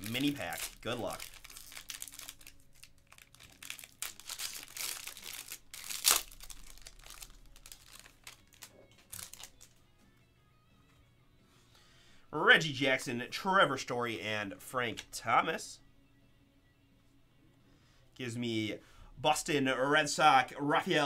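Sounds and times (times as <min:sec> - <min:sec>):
foil wrapper tearing and crinkling: 0:00.0 - 0:09.7.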